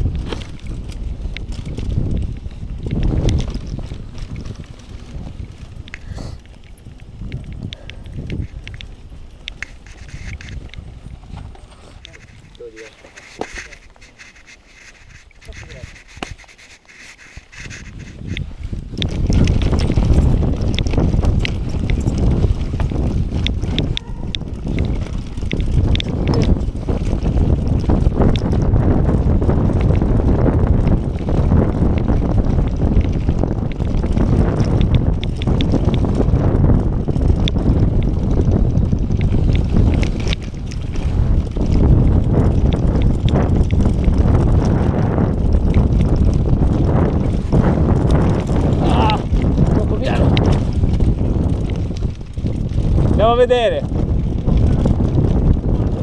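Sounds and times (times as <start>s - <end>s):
bike rattling and clattering: 0.0s - 56.0s
tyres on leafy dirt trail: 0.0s - 56.0s
wind buffeting microphone: 0.0s - 56.0s.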